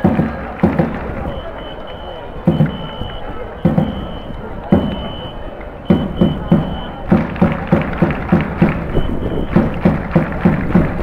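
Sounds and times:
stadium crowd cheering music: 0.0s - 11.0s.

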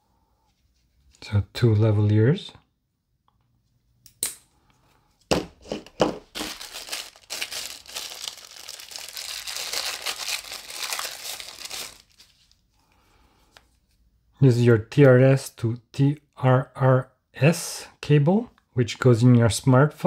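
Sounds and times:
plastic bag crinkling: 5.6s - 12.6s.

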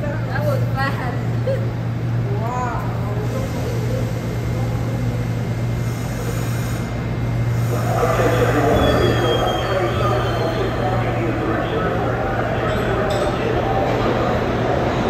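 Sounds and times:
train low hum: 0.0s - 15.0s
faint high whine: 7.6s - 14.3s.

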